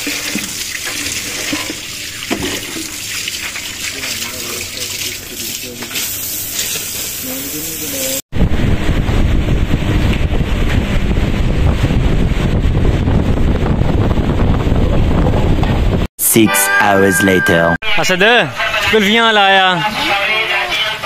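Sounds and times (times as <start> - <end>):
steady hiss of running water: 0.0 - 8.2
wind buffeting microphone: 8.3 - 16.1.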